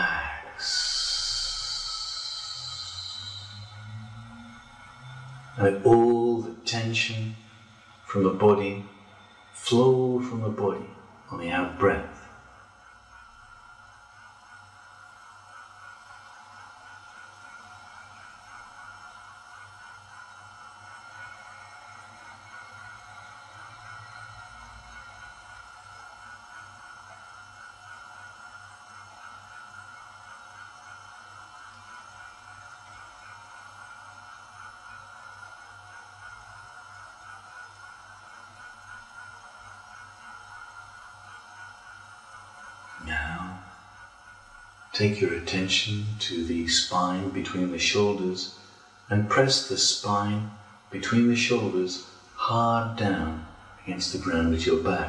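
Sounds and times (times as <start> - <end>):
low pulsing: 0.0 - 12.3
ambient music drone: 0.0 - 28.4.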